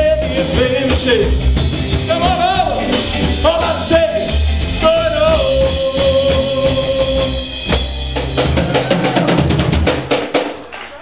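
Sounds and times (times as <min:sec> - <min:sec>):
rapid drum fill: 0:00.0 - 0:10.7
live rock and roll band: 0:00.0 - 0:11.0.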